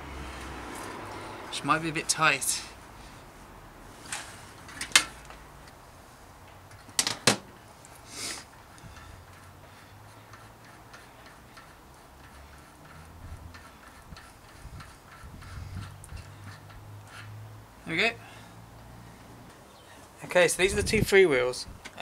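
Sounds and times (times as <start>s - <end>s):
faint light ticking of freehub: 8.7s - 17.2s.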